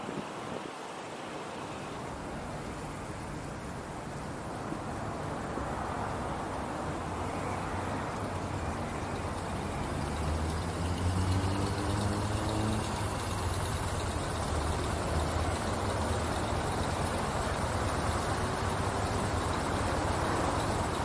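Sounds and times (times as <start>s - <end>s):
traffic engine rumble: 0.2s - 21.0s
vehicle engine pulling away: 4.8s - 21.0s.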